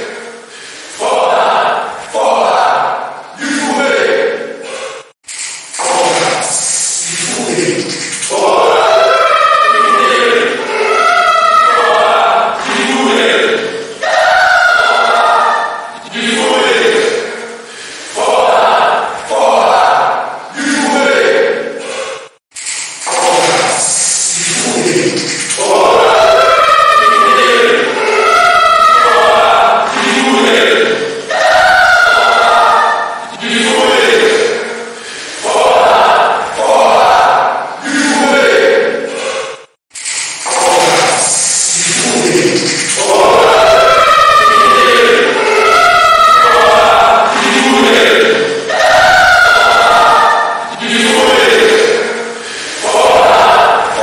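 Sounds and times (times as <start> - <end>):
choir-like wail of voices: 0.0 - 5.0, 7.2 - 22.2, 25.6 - 39.7, 40.5 - 54.0.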